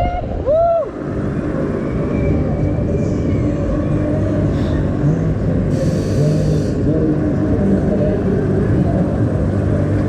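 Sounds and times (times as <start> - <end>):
wind and machinery rumble: 0.0 - 10.0.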